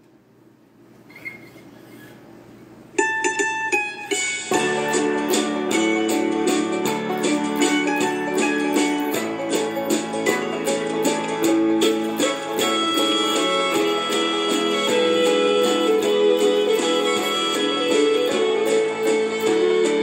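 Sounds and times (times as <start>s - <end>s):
mandolin-like strings: 3.0s - 20.0s
plucked guitar: 3.0s - 20.0s.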